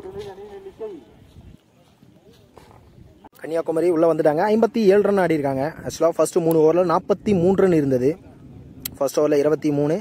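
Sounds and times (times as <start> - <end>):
faint distant voices: 0.0 - 10.0
outdoor background noise: 0.0 - 10.0.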